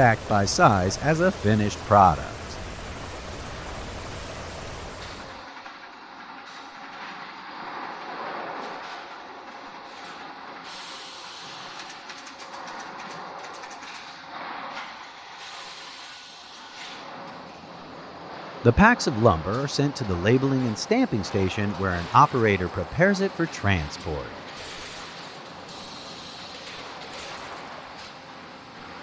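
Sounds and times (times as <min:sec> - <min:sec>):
faint hum: 0:00.0 - 0:05.4, 0:17.0 - 0:24.6
sawmill machinery running: 0:00.0 - 0:05.7, 0:16.6 - 0:29.0.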